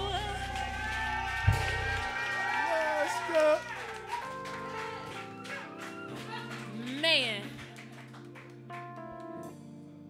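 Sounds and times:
bass guitar ringing: 0.0 - 2.6
keyboard chord sustaining: 0.0 - 7.6.

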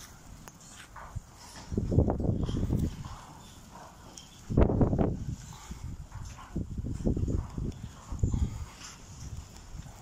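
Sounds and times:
hooves thumping and shuffling: 0.0 - 10.0.

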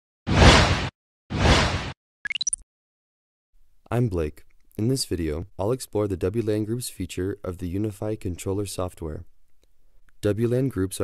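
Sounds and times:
whoosh sound effects: 0.3 - 2.0.

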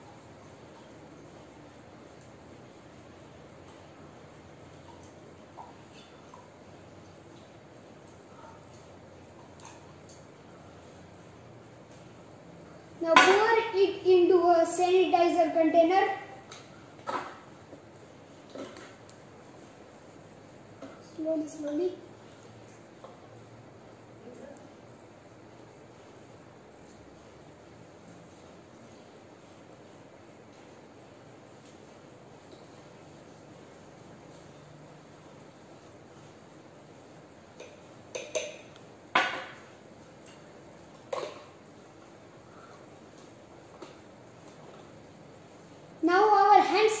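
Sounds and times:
low room noise: 0.0 - 47.0
containers clinking on glass tabletop: 37.6 - 39.7.

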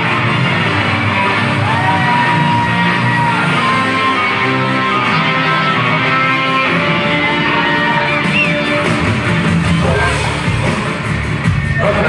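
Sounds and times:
live band playing guitar-led music: 0.0 - 12.0.

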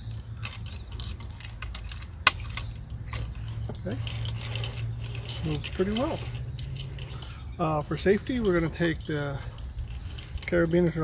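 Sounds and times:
small chains clicking and jingling: 0.0 - 11.0.

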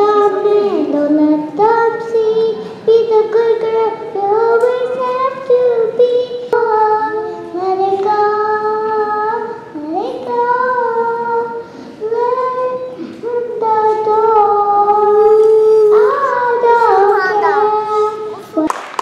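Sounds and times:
girl singing through speaker: 0.0 - 19.0.

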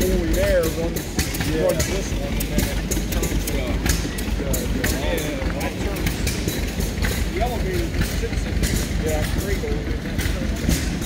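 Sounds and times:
drive belt turning: 0.0 - 11.0
tractor engine running: 0.0 - 11.0.

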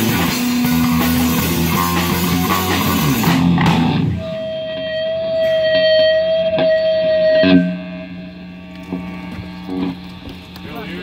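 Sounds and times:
electric guitar tone ringing: 0.0 - 11.0
punk rock band playing: 0.0 - 11.0.

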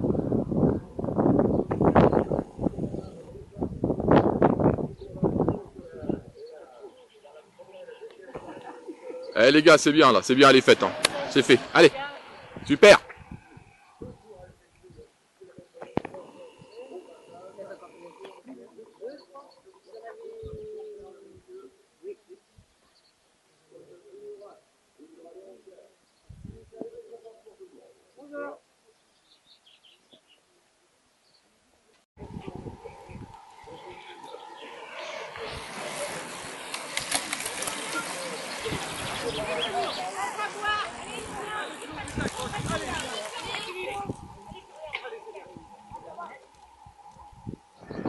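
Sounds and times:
distant voices: 0.0 - 22.5, 32.2 - 48.0
racing bicycles passing: 7.4 - 14.4, 32.2 - 48.0.

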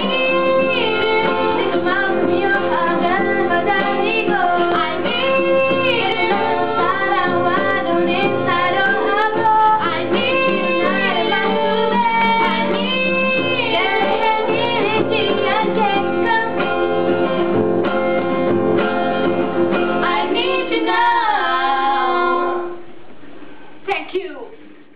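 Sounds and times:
women singing pop ballad: 0.0 - 17.4, 19.9 - 22.7
guitar accompaniment: 0.0 - 23.7.

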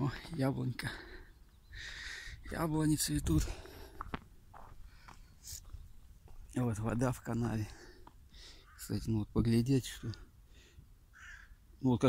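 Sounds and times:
footsteps on dirt path: 0.0 - 8.8.

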